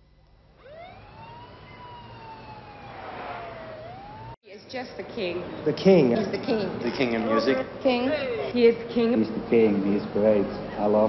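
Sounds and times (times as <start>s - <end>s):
siren wailing: 0.6s - 4.4s.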